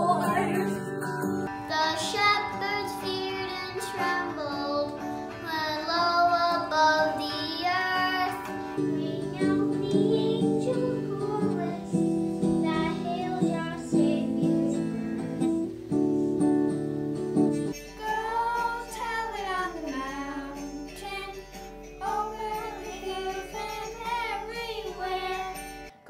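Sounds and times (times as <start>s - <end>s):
children singing: 0.0s - 0.8s, 1.7s - 15.3s, 18.0s - 25.8s
acoustic guitar: 0.0s - 26.0s.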